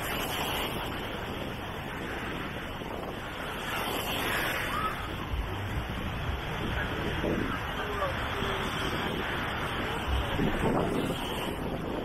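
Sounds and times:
small waves washing onto sand: 0.0 - 12.0
wind buffeting microphone: 0.0 - 12.0.

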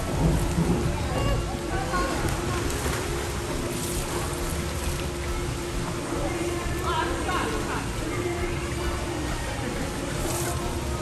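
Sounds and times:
swimmers splashing: 0.0 - 11.0
water falling: 0.0 - 11.0.

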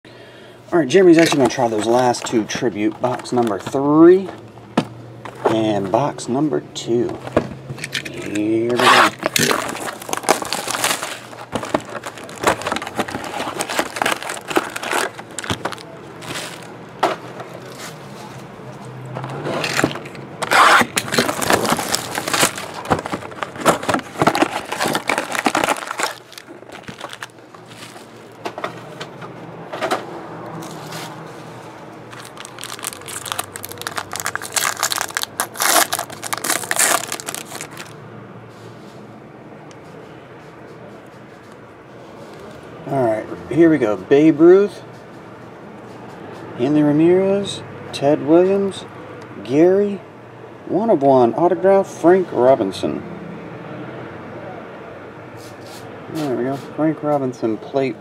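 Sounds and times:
plastic wrap crinkling and tearing: 7.9 - 16.8, 19.6 - 28.4, 32.1 - 38.0.

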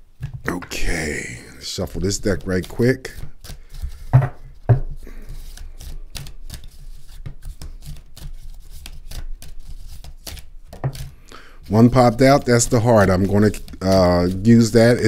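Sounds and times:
cards being shuffled: 1.8 - 15.0.

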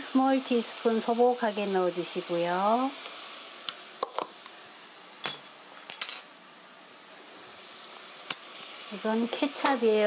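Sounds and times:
food sizzling in frying pan: 0.0 - 10.0.

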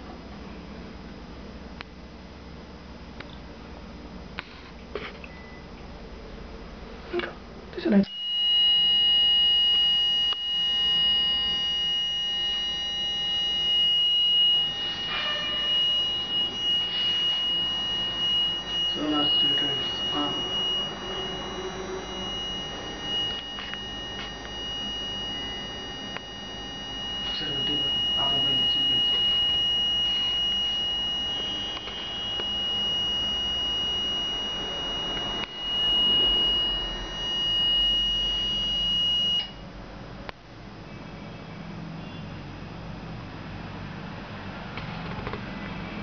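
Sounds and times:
high-pitched buzzer tone: 8.0 - 39.6.

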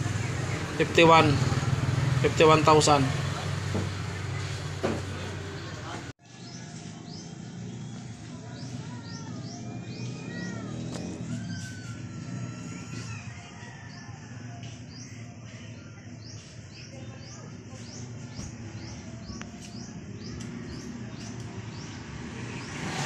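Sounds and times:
small birds chirping: 3.9 - 23.0.

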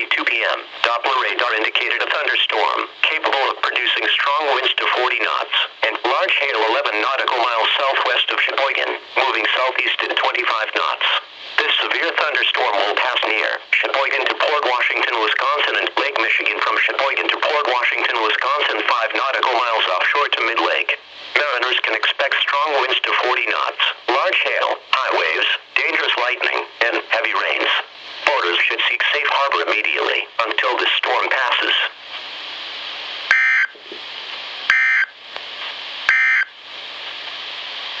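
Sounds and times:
voice over small radio speaker: 0.0 - 32.0.

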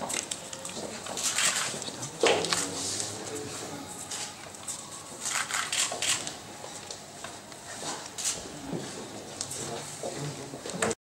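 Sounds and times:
paper pages rustling: 0.1 - 8.4.

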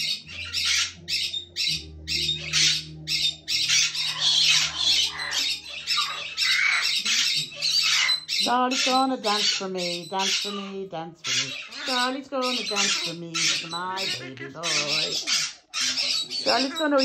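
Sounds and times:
cockatoo screeching: 0.0 - 17.0.

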